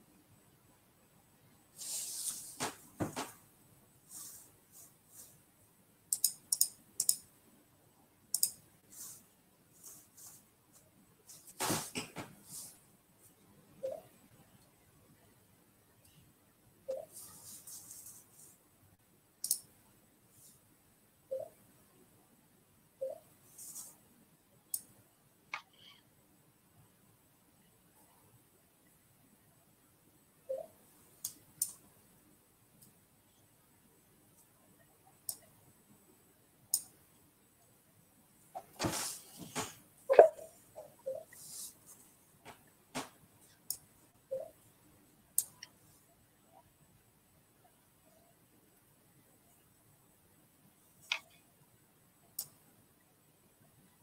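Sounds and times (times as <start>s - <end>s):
computer mouse clicks: 6.1s - 7.2s, 8.3s - 8.6s, 19.4s - 19.7s.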